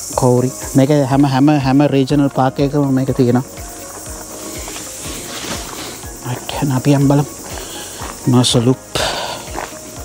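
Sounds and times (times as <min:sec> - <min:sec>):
steady high hiss: 0:00.0 - 0:10.0
footsteps on gravel: 0:00.6 - 0:10.0.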